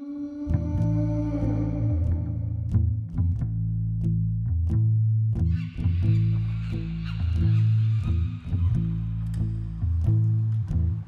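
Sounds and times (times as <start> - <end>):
guitar: 0.0 - 11.0
plucked bass notes: 0.4 - 11.0.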